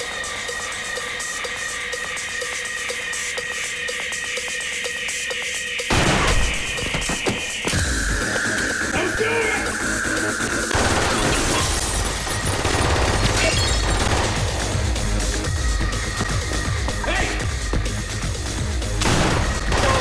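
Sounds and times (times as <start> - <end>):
music: 0.0 - 20.0
gunshots: 10.7 - 14.8, 19.0 - 20.0.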